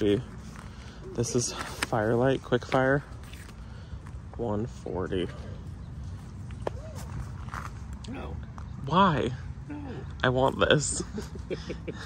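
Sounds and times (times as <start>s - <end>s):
outdoor background rumble: 0.0s - 12.0s.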